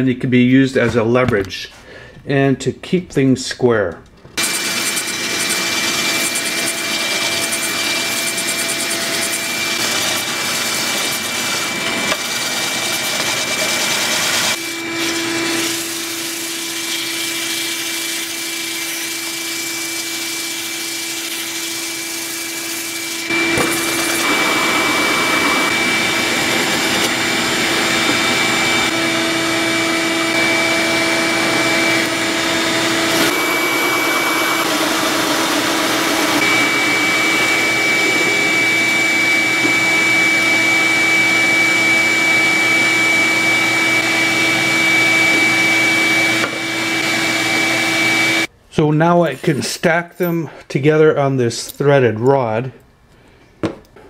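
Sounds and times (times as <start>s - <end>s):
hole saw cutting wood: 4.4s - 48.5s
drill press whine: 22.3s - 48.5s.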